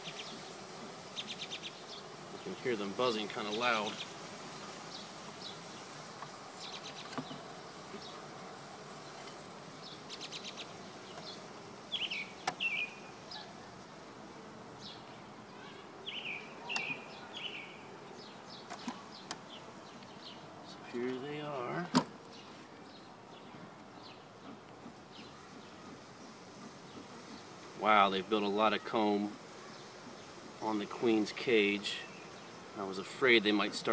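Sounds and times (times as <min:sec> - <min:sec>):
honeybees buzzing: 0:00.0 - 0:33.9.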